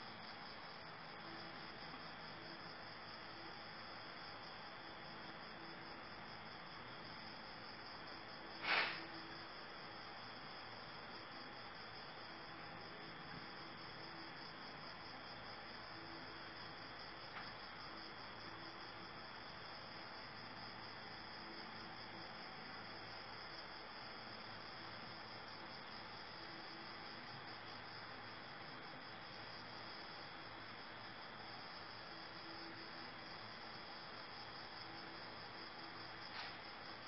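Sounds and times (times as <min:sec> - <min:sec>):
crickets chirping: 0:00.0 - 0:37.0
faint background hiss: 0:00.0 - 0:37.0.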